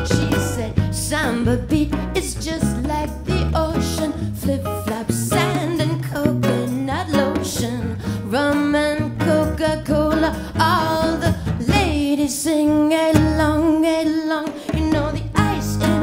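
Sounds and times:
acoustic and electric guitars: 0:00.0 - 0:16.0
hand drum: 0:00.0 - 0:16.0
woman singing: 0:00.0 - 0:16.0.

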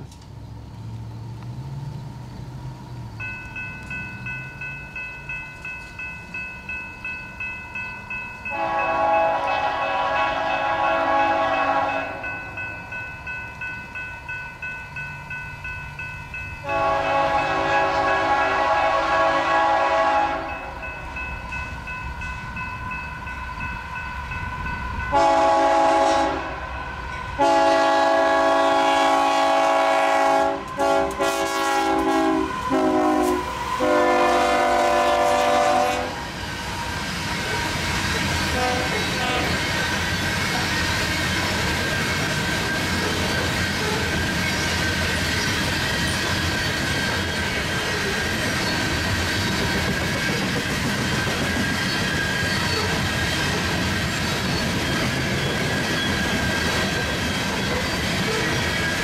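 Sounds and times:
crossing signal bell ringing: 0:03.1 - 0:50.4
locomotive air horn blasts: 0:08.5 - 0:12.3, 0:16.6 - 0:20.8, 0:25.1 - 0:26.8, 0:27.4 - 0:36.3, 0:38.5 - 0:39.6.

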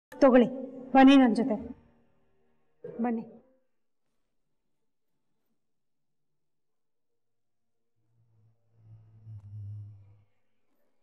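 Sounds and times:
low steady tone: 0:08.2 - 0:10.5.

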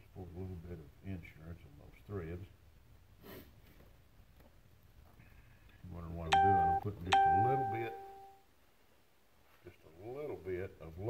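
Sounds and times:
voice: 0:00.0 - 0:02.5, 0:05.9 - 0:08.1, 0:09.7 - 0:11.0
bell-like chime tones: 0:06.3 - 0:08.4.

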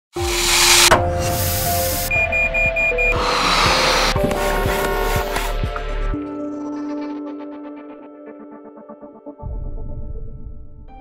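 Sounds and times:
background music: 0:00.1 - 0:11.0
hissing noise: 0:00.2 - 0:02.1
high electronic alarm beeps: 0:02.0 - 0:05.0.

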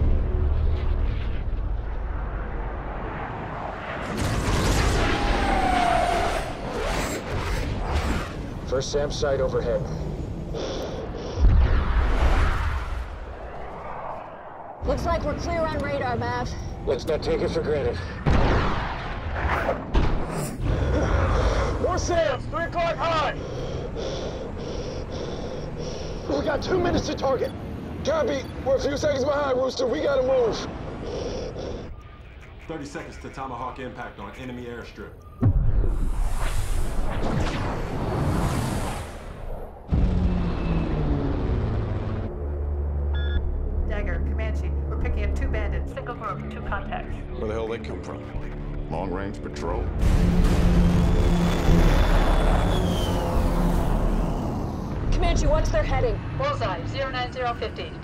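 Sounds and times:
propeller drone: 0:00.0 - 0:11.6, 0:20.5 - 0:34.4, 0:38.9 - 0:48.9, 0:49.8 - 0:58.0
fighter jets roaring past: 0:00.9 - 0:19.9, 0:50.0 - 0:58.0
short electronic beeps: 0:43.1 - 0:43.5.

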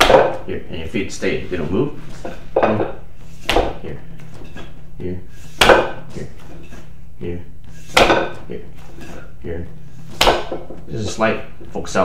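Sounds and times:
knock on wooden dummy arm: 0:02.6 - 0:03.8.

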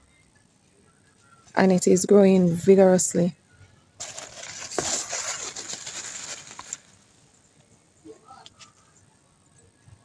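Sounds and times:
leaves rustling against microphone: 0:04.0 - 0:07.1.

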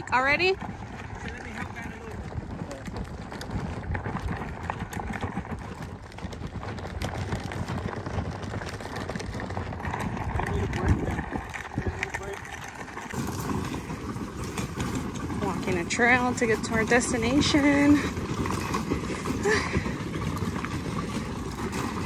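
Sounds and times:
footsteps on gravel: 0:00.5 - 0:22.0.

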